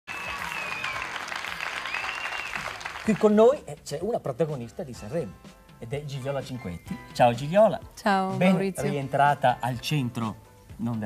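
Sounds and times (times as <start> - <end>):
audience applauding: 0.1 - 3.6.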